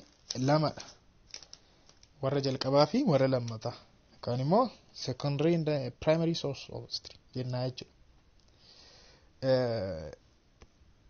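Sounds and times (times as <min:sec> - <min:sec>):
man saying one syllable: 0:09.4 - 0:10.2.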